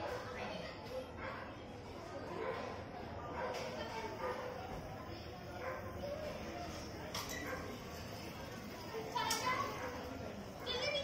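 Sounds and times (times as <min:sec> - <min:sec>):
faint background voices: 0:00.0 - 0:11.0.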